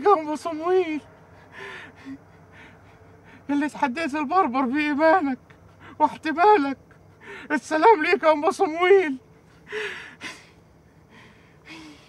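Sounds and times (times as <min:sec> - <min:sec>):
man breathing: 0:01.2 - 0:03.5, 0:09.5 - 0:12.0.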